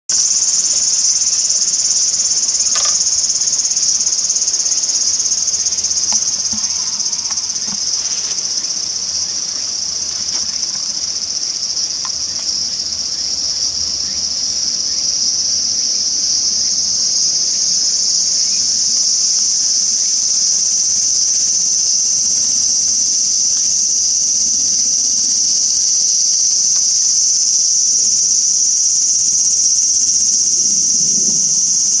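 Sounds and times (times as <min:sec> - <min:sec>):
insects droning: 0:00.1 - 0:32.0.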